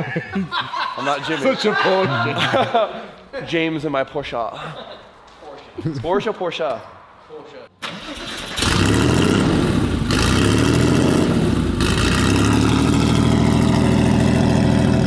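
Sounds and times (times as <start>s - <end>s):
car engine starting and idling: 7.8s - 15.0s.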